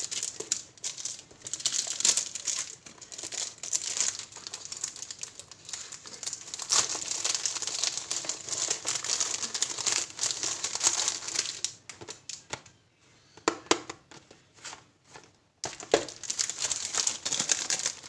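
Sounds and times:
plastic shrink-wrap crinkling: 0.0 - 12.5, 15.6 - 18.0
plastic tearing: 0.0 - 12.5, 15.6 - 18.0.

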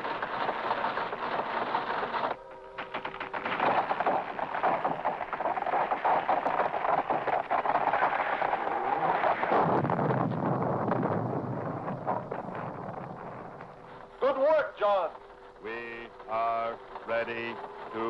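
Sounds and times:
low rumbling crash of tree: 0.0 - 18.0
tree crackling as it gives way: 0.0 - 18.0
tree creaking: 0.0 - 18.0.

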